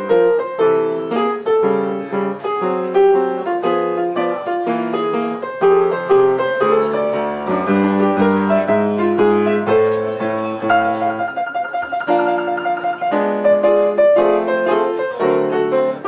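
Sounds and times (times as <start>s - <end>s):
piano music: 0.0s - 16.0s.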